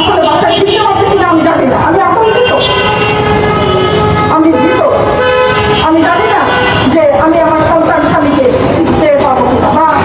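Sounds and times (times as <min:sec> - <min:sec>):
vehicle horns in traffic: 0:00.0 - 0:01.2, 0:01.8 - 0:07.1
woman speaking over loudspeaker: 0:00.0 - 0:02.8, 0:04.2 - 0:10.0.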